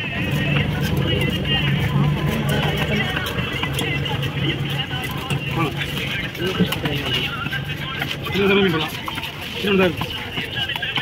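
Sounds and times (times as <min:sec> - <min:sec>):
low engine-like hum: 0:00.0 - 0:08.0
background voices: 0:00.0 - 0:11.0.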